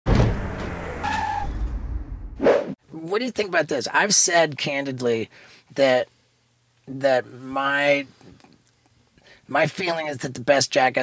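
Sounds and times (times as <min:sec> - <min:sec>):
tire skidding: 0:00.1 - 0:02.2
tire squeal: 0:00.4 - 0:02.1.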